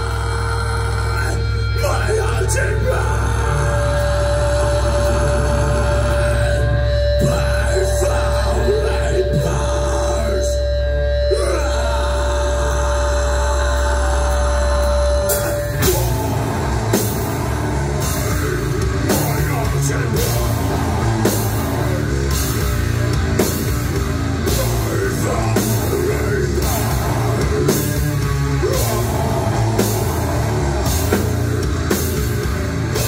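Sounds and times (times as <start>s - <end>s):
heavy low drone: 0.0s - 33.0s
steady high tone: 0.0s - 33.0s
drums and cymbals crashing: 13.6s - 33.0s.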